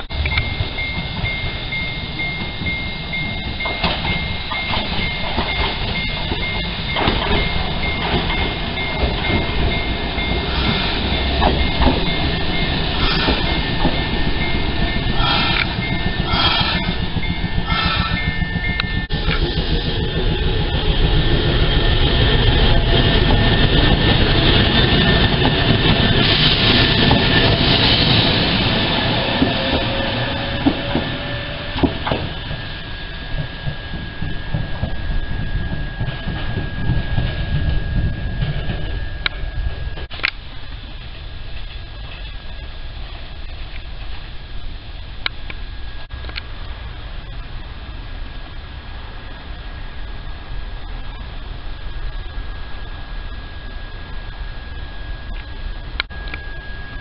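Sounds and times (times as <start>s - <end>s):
thin high tone: 0.0s - 19.8s, 52.0s - 57.0s
electric train rumbling on rails: 0.0s - 57.0s.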